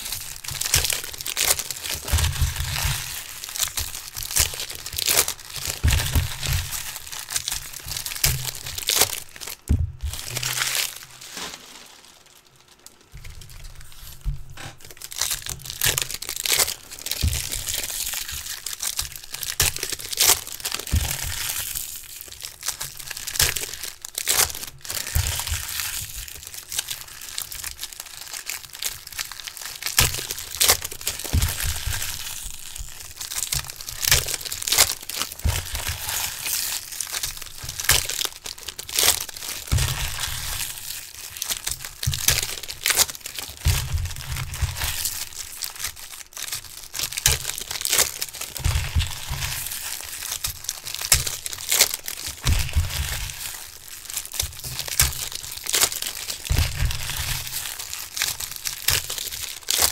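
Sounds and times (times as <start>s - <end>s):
foil wrappers torn and crinkled: 0.0s - 59.9s.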